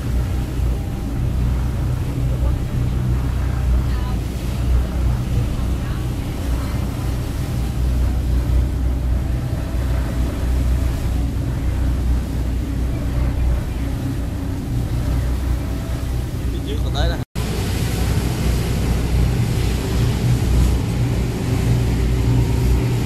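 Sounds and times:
ferry engine droning: 0.0 - 23.0
water and wind noise: 0.0 - 23.0.

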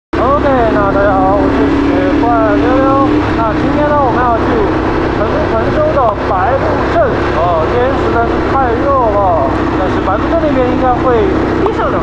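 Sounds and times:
motorcycle engine hum: 0.2 - 12.0
person talking: 0.2 - 12.0
wind rumble on microphone: 0.2 - 12.0.

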